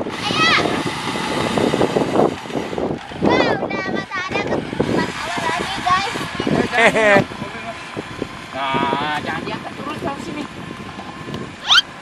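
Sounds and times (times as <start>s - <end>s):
steady rough noise: 0.0s - 12.0s
child squealing and calling out: 11.6s - 11.9s.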